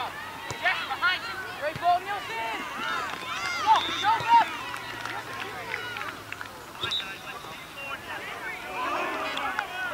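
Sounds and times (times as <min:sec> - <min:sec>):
people shouting at soccer game: 0:00.0 - 0:06.2, 0:07.9 - 0:09.9.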